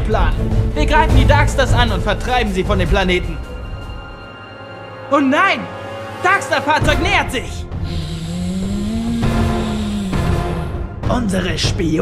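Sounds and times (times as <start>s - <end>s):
engine-like hum rising in pitch: 7.7s - 11.0s.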